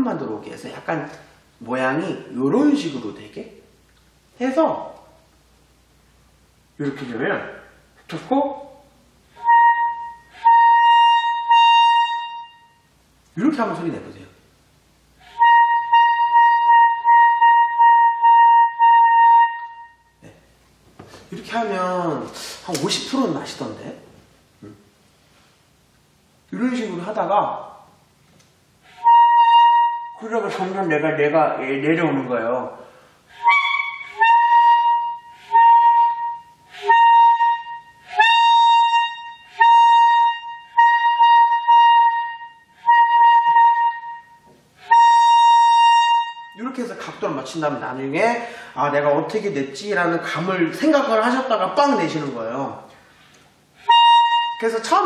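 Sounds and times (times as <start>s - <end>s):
alto saxophone high note: 9.3s - 12.9s, 15.2s - 20.4s, 28.8s - 30.3s, 33.3s - 46.6s, 53.8s - 54.7s.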